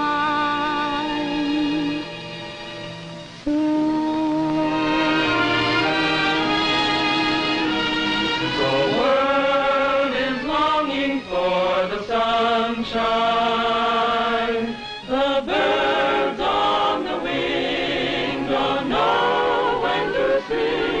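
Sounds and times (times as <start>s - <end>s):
choir singing with vibrato: 0.0s - 21.0s.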